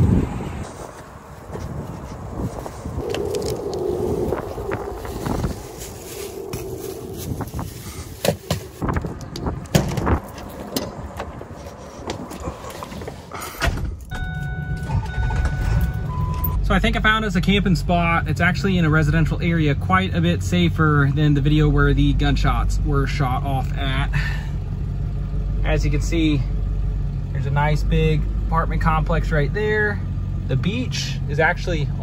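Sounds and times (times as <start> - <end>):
truck engine running: 0.0 - 13.6, 14.2 - 32.0
electronic dashboard chime: 14.1 - 16.6.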